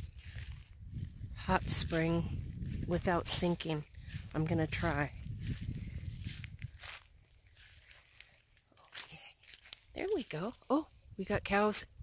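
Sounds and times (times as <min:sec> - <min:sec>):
low rumble on microphone: 0:00.0 - 0:08.0
footsteps on dry ground: 0:00.0 - 0:11.7.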